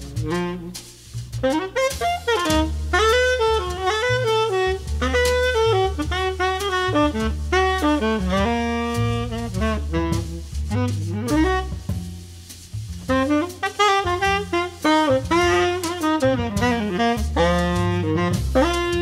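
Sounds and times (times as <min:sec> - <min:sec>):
double bass: 0:00.0 - 0:19.0
drums: 0:00.0 - 0:19.0
jazz tenor saxophone: 0:00.0 - 0:19.0.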